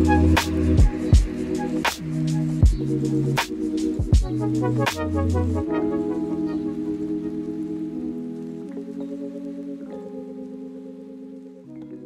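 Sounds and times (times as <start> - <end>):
soft held music chords: 0.0 - 12.0.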